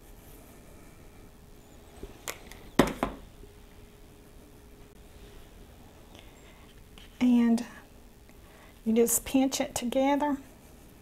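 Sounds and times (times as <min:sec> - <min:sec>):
bowl knocking on counter: 0:02.8 - 0:03.2.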